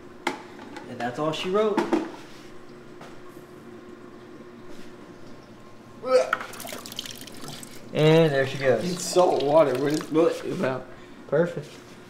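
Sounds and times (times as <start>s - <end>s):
water trickling into bucket: 6.4s - 10.7s.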